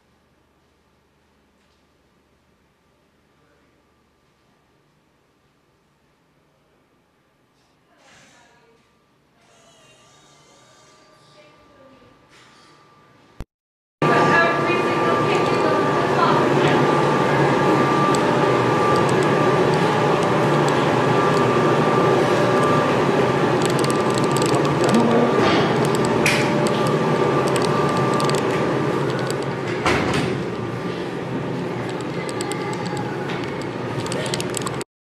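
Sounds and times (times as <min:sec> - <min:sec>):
machinery humming: 0:14.0 - 0:34.8.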